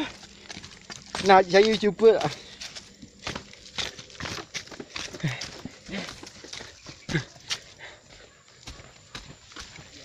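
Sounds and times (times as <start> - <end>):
footsteps on concrete steps: 0.0 - 10.0
walking stick tapping ground: 0.0 - 10.0.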